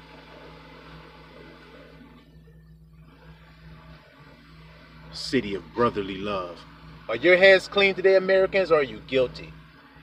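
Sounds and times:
low hum with light hiss: 0.0s - 10.0s.

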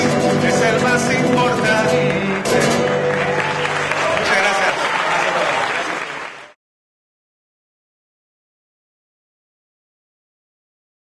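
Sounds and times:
audience applauding: 1.3s - 6.6s.

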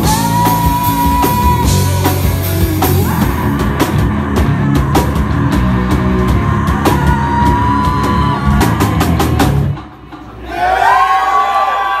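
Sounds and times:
heavy rock band playing: 0.0s - 11.0s
crowd yelling and whooping: 6.1s - 12.0s.

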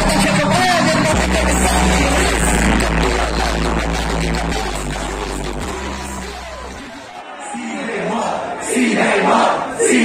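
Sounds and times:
hip-hop beat over loudspeakers: 0.0s - 7.1s.

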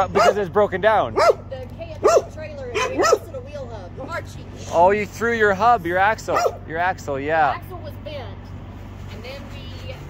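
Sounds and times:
small dog barking: 0.1s - 0.5s, 1.2s - 3.4s, 6.3s - 6.6s.

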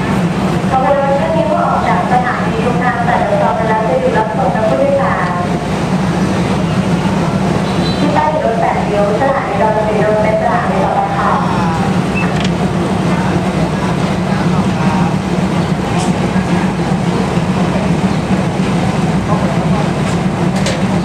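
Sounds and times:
faint voices: 0.0s - 21.0s
train engine humming: 0.0s - 21.0s.

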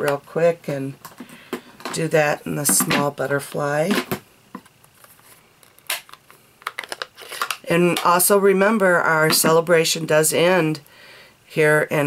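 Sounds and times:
plastic case snapping open: 5.7s - 8.1s.

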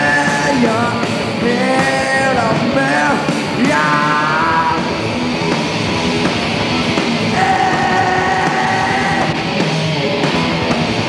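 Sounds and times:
person singing: 0.0s - 5.0s, 7.3s - 9.4s
grunge band playing live: 0.0s - 11.0s.

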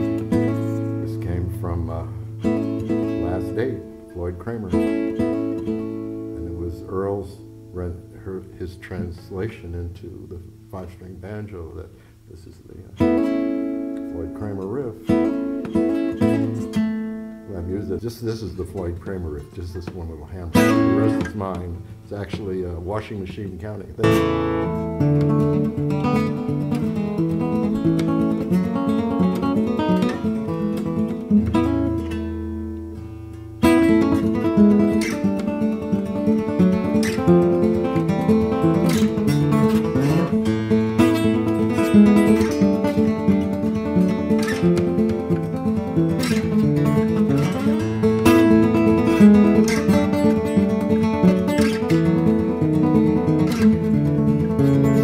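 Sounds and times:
acoustic guitar picked in rolls: 0.0s - 55.0s.

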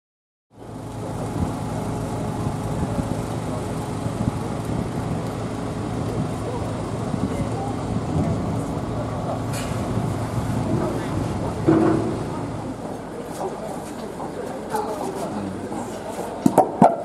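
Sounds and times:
vehicle engine running: 0.5s - 16.9s
crowd talking: 0.6s - 17.0s.

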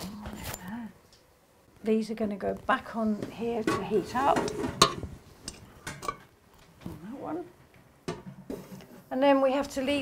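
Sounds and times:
metal pots clinking on hot plates: 3.6s - 6.3s.

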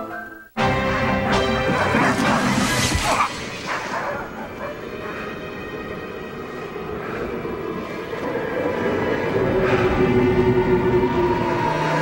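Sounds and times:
sustained music notes: 0.0s - 12.0s.

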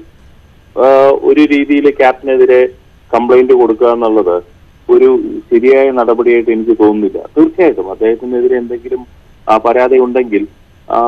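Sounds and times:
man talking: 0.8s - 11.0s.

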